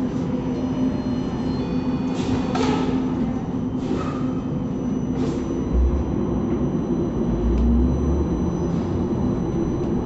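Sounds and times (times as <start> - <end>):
bus motor hum: 0.0 - 10.0.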